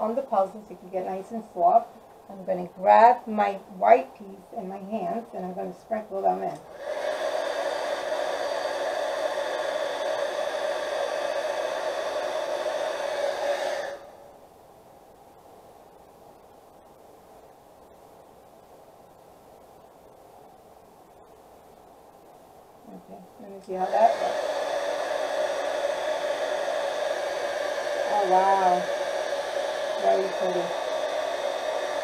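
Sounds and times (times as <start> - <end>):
heat gun fan humming: 4.6 - 14.3, 23.3 - 32.0.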